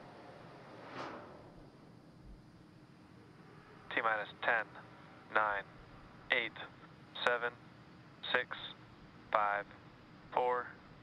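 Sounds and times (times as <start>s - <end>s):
soft whoosh: 0.7s - 1.6s.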